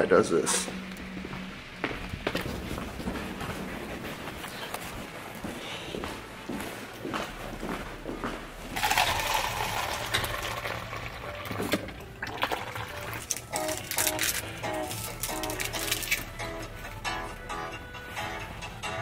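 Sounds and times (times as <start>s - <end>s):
low steady hum: 0.0s - 5.4s
coffee pouring into paper cup: 8.8s - 16.2s.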